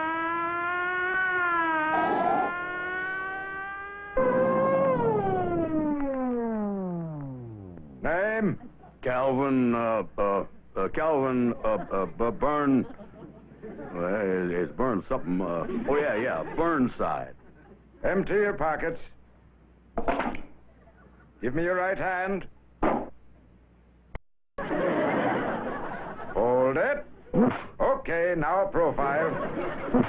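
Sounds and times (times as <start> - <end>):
cartoon police siren winding down: 0.0 - 8.0.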